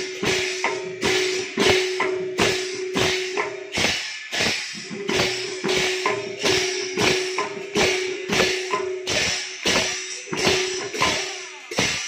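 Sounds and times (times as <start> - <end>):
barrel drums played by hand: 0.0 - 12.0.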